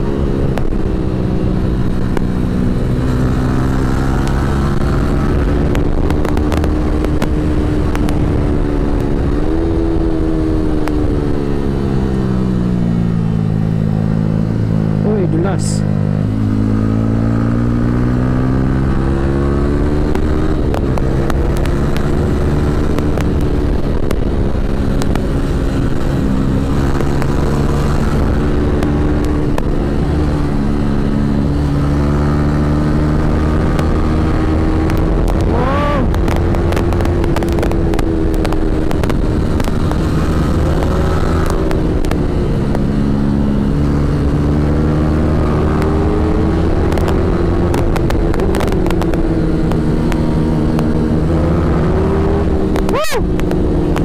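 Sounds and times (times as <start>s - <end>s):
motorcycle engine while riding: 0.0s - 54.0s.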